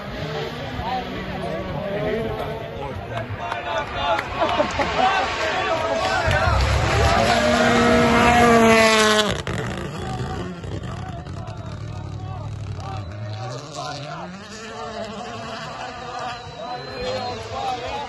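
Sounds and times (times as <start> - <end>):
rally car engine at full throttle: 0.0 - 18.0
spectators chattering: 0.0 - 18.0.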